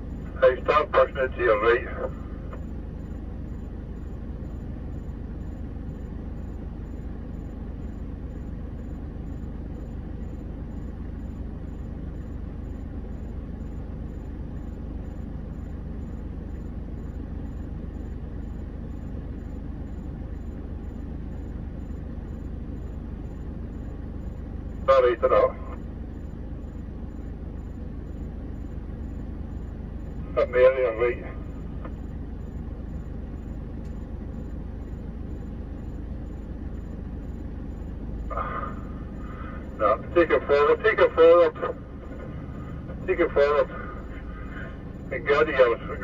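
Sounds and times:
vehicle engines idling: 0.0s - 46.0s.

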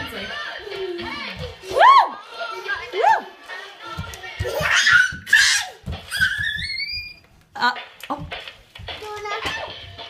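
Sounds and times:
child's high-pitched squeal: 4.6s - 7.2s.

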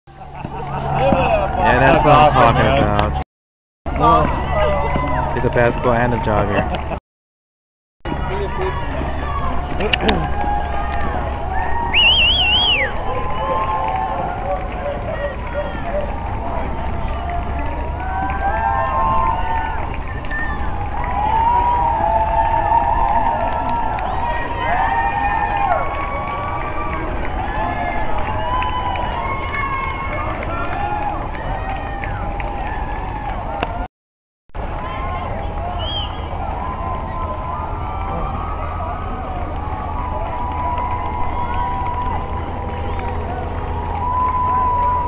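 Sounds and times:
crowd cheering and shouting: 0.1s - 3.2s, 3.9s - 7.0s, 8.1s - 33.9s, 34.6s - 45.0s
people talking: 0.6s - 3.2s, 4.0s - 6.8s
steady low rumble: 8.1s - 33.8s, 34.6s - 45.0s.

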